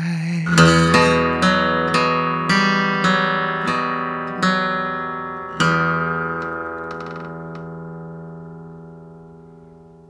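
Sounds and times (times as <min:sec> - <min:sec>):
acoustic guitar chord ringing: 0:00.4 - 0:10.0.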